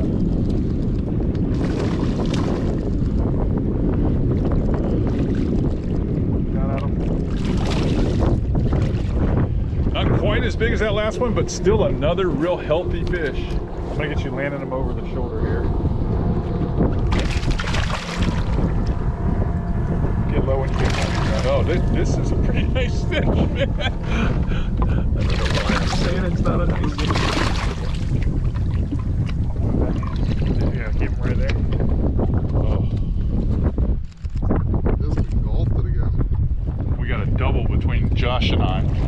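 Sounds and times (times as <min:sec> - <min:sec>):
water splashing against boat: 0:00.0 - 0:33.2
wind rumble on microphone: 0:00.0 - 0:39.0
indistinct voices: 0:09.9 - 0:17.2, 0:18.4 - 0:27.1
fish splashing at water surface: 0:17.1 - 0:18.6.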